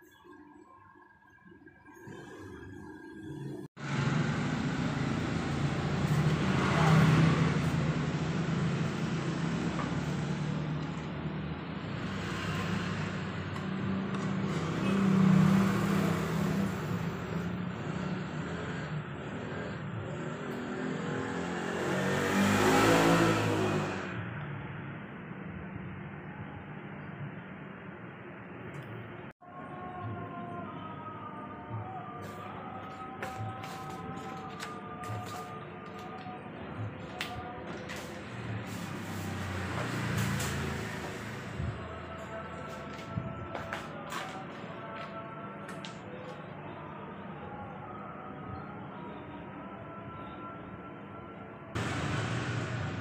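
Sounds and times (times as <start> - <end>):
motor vehicles passing: 3.0 - 26.0, 31.8 - 47.6, 51.8 - 53.0.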